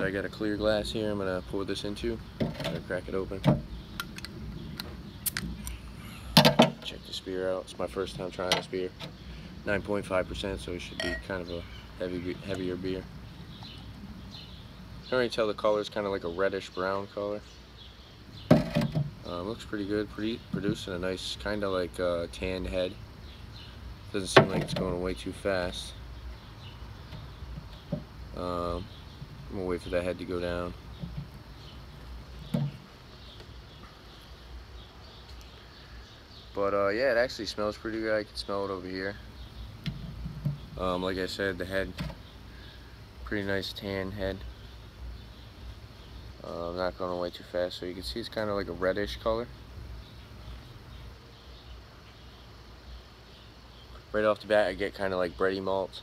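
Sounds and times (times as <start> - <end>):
faint bird chirps: 0.0 - 56.0.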